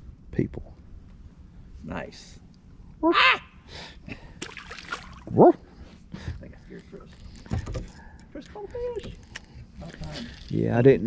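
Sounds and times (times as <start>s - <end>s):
man whooping: 3.0s - 3.6s.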